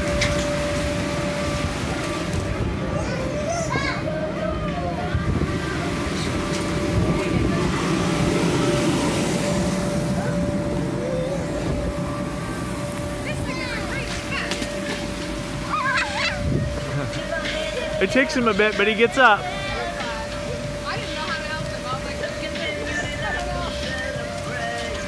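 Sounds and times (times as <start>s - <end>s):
blower fan humming: 0.0s - 25.0s
children calling out: 2.8s - 17.2s.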